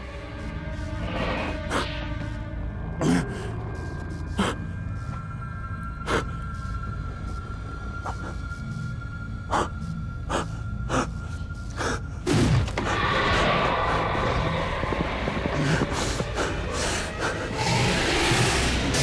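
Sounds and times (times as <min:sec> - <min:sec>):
low drone: 0:00.0 - 0:19.0.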